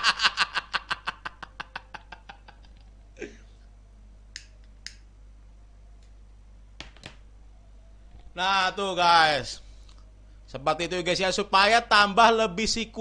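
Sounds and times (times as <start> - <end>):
man laughing: 0.0 - 3.4.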